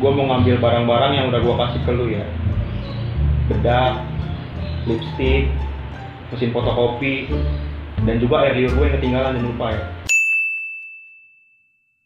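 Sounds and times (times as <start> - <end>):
bright bell ding: 10.1 - 12.0.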